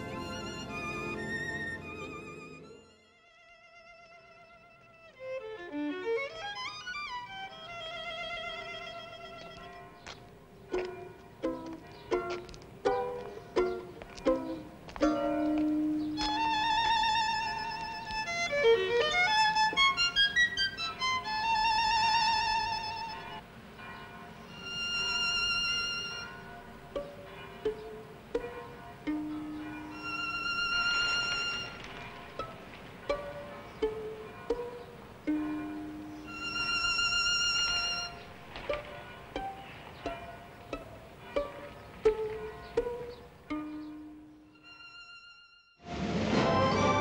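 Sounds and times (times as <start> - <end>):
solo violin melody: 0.0 - 9.8, 10.7 - 23.4, 24.5 - 45.8.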